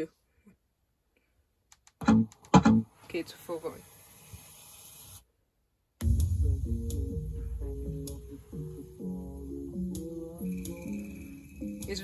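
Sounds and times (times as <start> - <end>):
bass-heavy music from speaker: 6.0 - 12.0.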